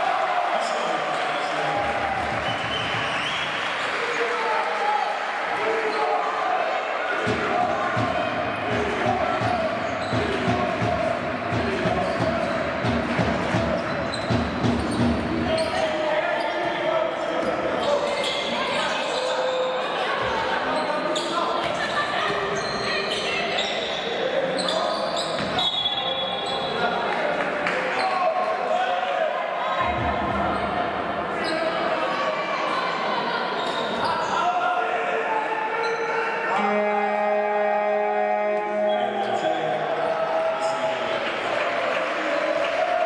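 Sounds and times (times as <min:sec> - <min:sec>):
players calling out: 0:03.9 - 0:26.8.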